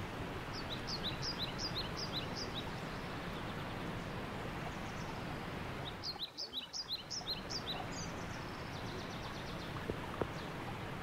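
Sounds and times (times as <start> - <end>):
background hiss: 0.0 - 11.0
songbird chirping: 0.4 - 10.8.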